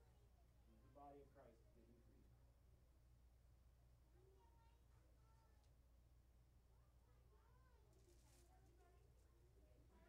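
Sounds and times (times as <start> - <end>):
faint distant voices: 6.6 - 10.0.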